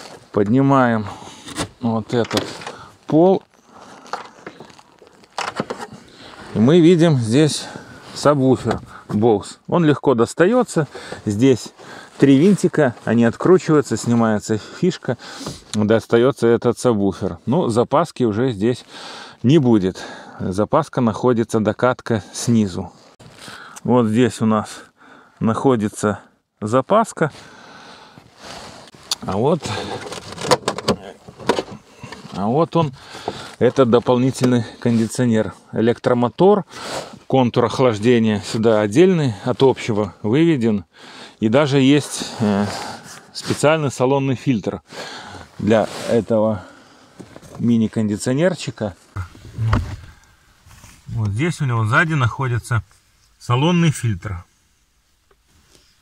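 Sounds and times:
floor panel rustling and scraping: 49.2 - 51.1.

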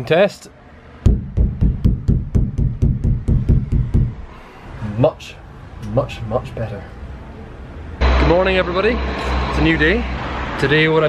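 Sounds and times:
dull knocking on metal roof: 1.0 - 4.2.

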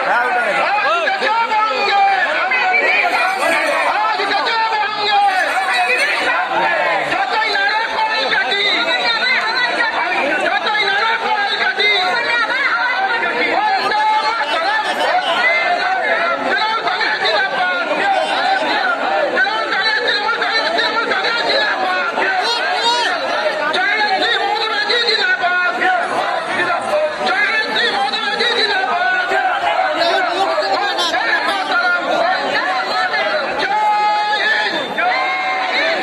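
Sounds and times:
crowd chatter: 0.0 - 36.0.

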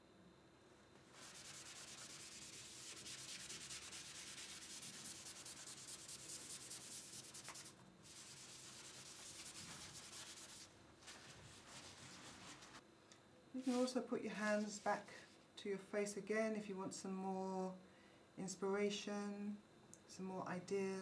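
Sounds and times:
coloring strokes rubbing on paper: 1.0 - 12.8, 13.6 - 14.0.

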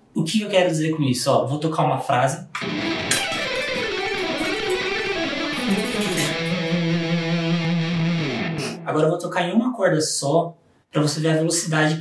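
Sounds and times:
electric guitar lead phrase: 2.6 - 8.9.

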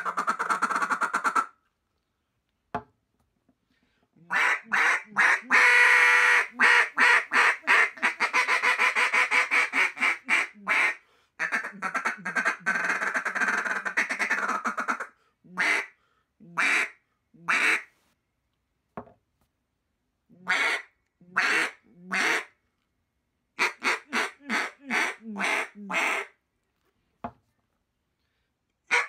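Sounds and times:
duck call quacking: 0.0 - 1.6, 4.3 - 15.9, 16.5 - 17.9, 20.4 - 22.5, 23.6 - 26.4.

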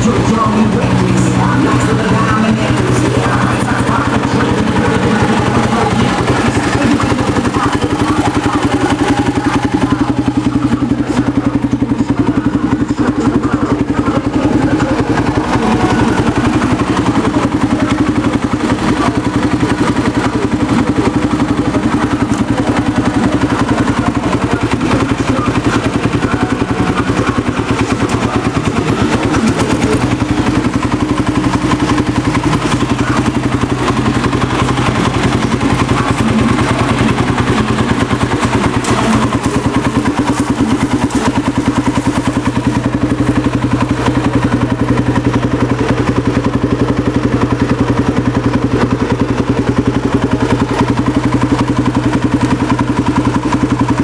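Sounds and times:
atv engine idling: 0.0 - 54.0.

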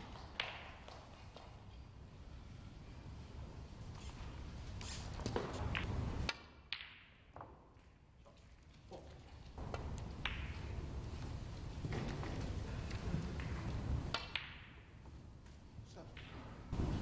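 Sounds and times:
snooker balls clicking: 0.0 - 1.9, 5.3 - 16.6
low arena hum: 0.0 - 6.6, 8.9 - 17.0.

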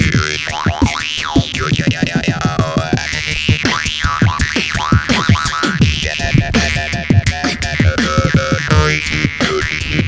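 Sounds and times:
beatbox beat: 0.0 - 10.0
jaw harp twanging: 0.0 - 10.0.

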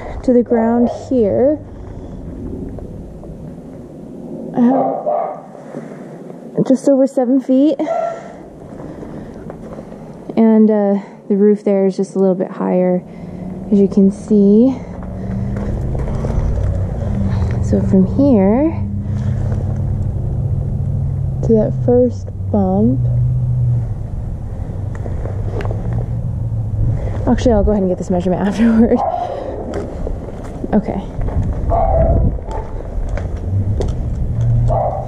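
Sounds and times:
outdoor background noise: 0.0 - 35.0
low mechanical hum: 12.2 - 35.0
person laughing: 28.6 - 29.1.

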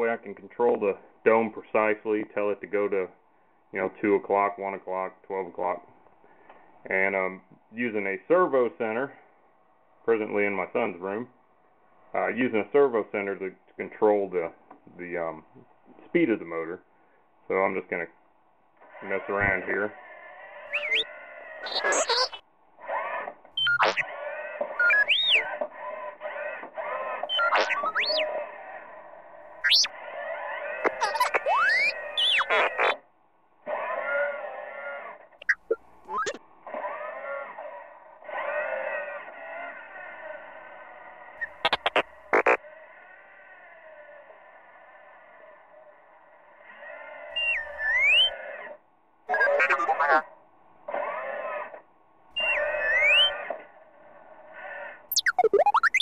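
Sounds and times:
sharp rising electronic whistles: 20.7 - 22.4, 23.6 - 24.1, 24.8 - 25.6, 27.2 - 28.4, 29.6 - 30.0, 30.9 - 33.0, 35.4 - 36.4, 41.4 - 42.6, 47.4 - 48.4, 52.4 - 53.5, 55.1 - 56.0
synthesized warbling chirps: 20.7 - 22.4, 23.6 - 24.0, 24.8 - 25.5, 27.3 - 28.3, 29.6 - 29.9, 30.9 - 33.0, 35.4 - 36.4, 41.4 - 42.6, 52.4 - 53.4, 55.1 - 56.0.

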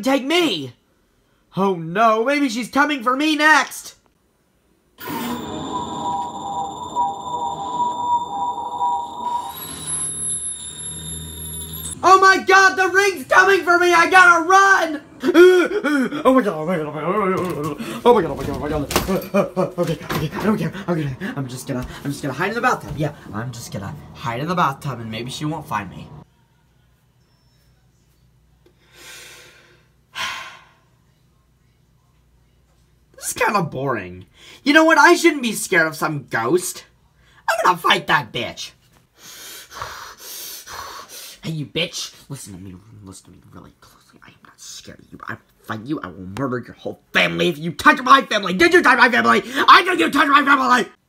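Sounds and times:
eerie electronic drone: 5.0 - 12.0, 20.6 - 26.2
low hum: 5.0 - 12.1, 20.2 - 26.2
thin high whine: 5.0 - 15.0.

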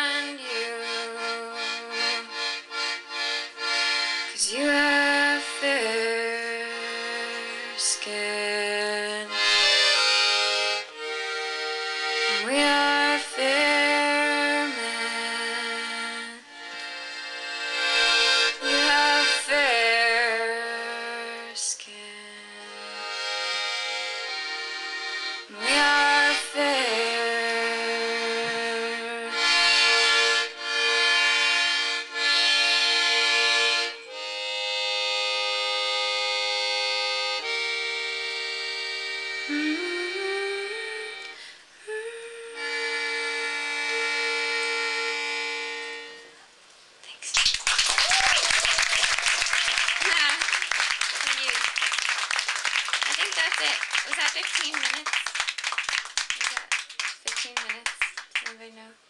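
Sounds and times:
button accordion playing chords: 0.0 - 46.4.

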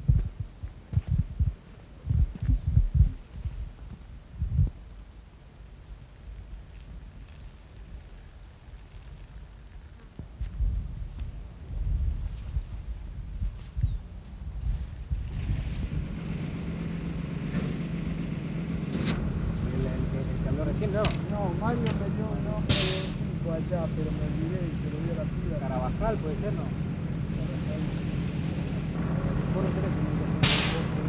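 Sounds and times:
wind buffeting microphone: 0.0 - 5.0, 10.2 - 17.3
distant voices: 12.7 - 31.0
truck engine idling: 15.2 - 31.0
sharp knocks: 22.7 - 23.2, 30.4 - 30.9.

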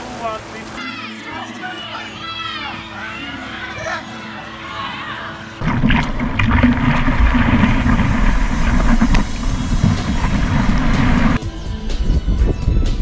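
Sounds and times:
music: 0.0 - 13.0
seawater rushing and splashing: 5.6 - 11.4.

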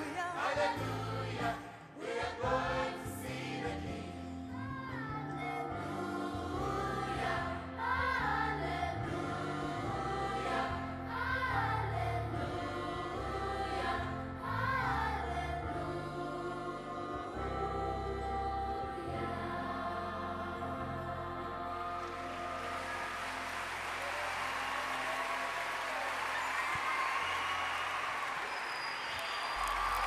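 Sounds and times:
choir singing gospel song: 0.0 - 25.1.

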